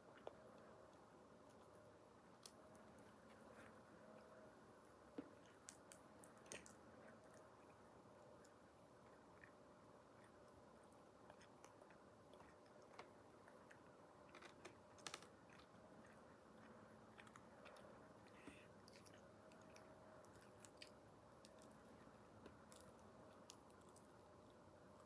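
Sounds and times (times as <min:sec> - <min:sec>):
faint chewing: 0:00.0 - 0:25.0.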